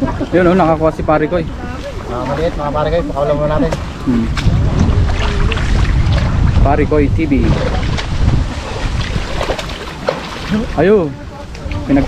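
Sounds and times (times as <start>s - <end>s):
water sloshing and splashing: 0.0s - 6.7s, 7.3s - 12.0s
low rumble: 2.7s - 9.7s.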